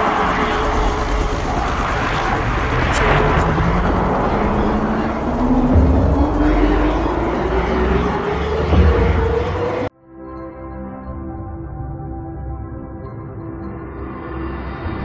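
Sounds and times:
helicopter hovering: 0.0s - 9.9s
low rising tone: 0.0s - 9.9s.

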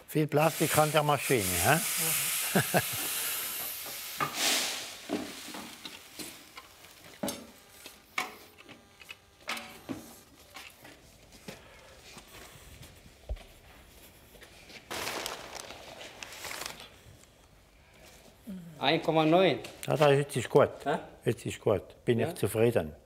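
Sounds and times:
grain rustling hiss: 0.1s - 8.1s, 14.8s - 17.0s.

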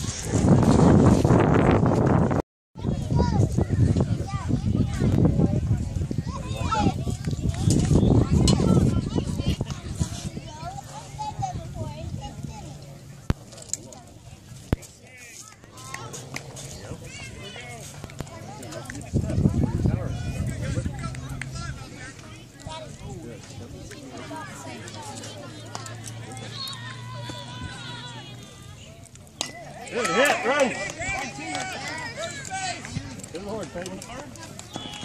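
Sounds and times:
spectators chattering: 2.8s - 35.0s.

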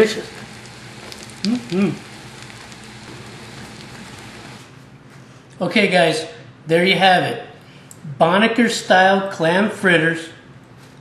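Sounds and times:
food sizzling in hot oil: 0.0s - 4.7s.

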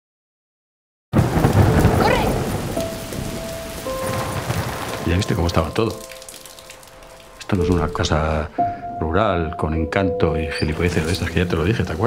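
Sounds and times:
heavy rain: 1.2s - 8.8s, 10.6s - 12.0s.

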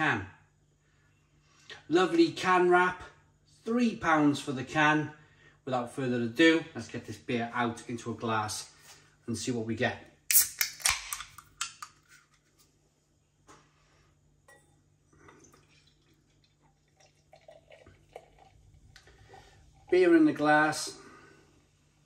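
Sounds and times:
can ring pull cracking open: 10.3s - 12.0s
beer pouring into a glass: 14.5s - 20.8s.

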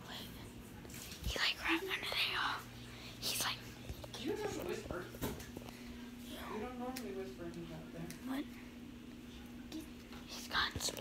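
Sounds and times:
boy whispering: 1.3s - 3.8s, 9.7s - 11.0s.

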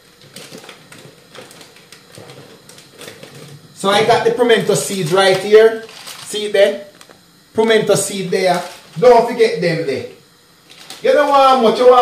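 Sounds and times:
rustling of packets: 4.8s - 6.5s, 8.5s - 9.1s, 10.6s - 11.6s.

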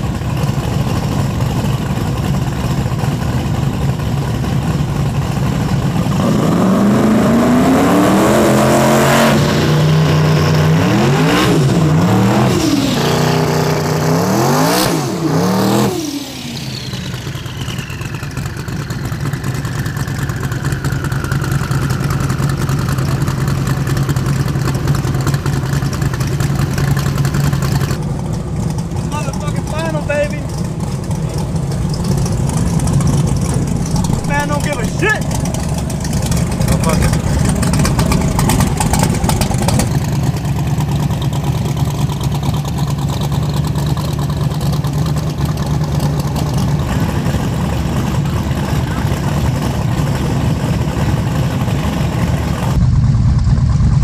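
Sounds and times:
car engine idling: 0.0s - 54.0s
car engine revving: 0.0s - 54.0s.

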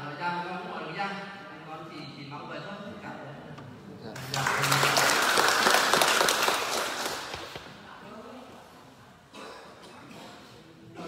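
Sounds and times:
audience applauding: 4.2s - 7.6s.

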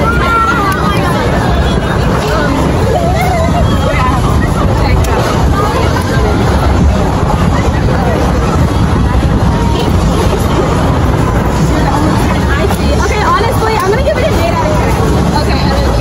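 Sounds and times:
girls talking: 0.0s - 16.0s
steady low rumble: 0.0s - 16.0s.

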